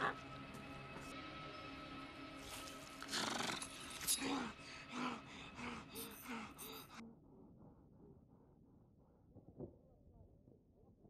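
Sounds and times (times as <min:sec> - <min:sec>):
faint background music: 0:00.0 - 0:08.5.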